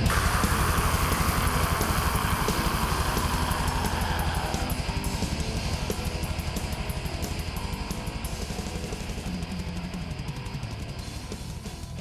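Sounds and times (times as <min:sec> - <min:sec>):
distorted guitar: 0:00.0 - 0:12.0
fast drumming: 0:00.0 - 0:12.0.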